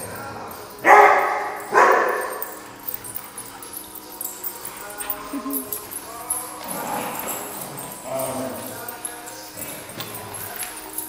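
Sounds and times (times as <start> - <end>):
dog barking: 0.8 - 2.6.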